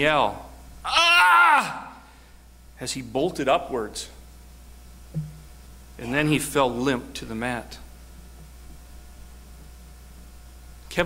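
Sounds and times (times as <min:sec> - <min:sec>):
steady low hum: 0:00.0 - 0:11.0
man speaking: 0:06.0 - 0:07.8.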